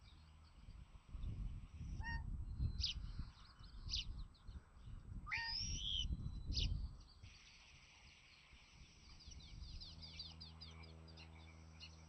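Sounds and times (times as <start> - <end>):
eagle calls: 2.0 - 2.3, 5.3 - 6.1.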